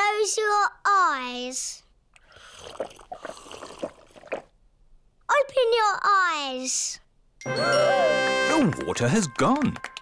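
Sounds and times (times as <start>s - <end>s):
cartoon gulps and slurps: 2.2s - 4.6s.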